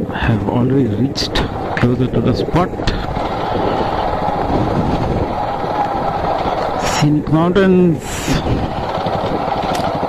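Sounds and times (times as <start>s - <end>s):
road noise: 0.0s - 10.0s
wind noise: 0.0s - 10.0s
motorcycle engine: 0.1s - 10.0s.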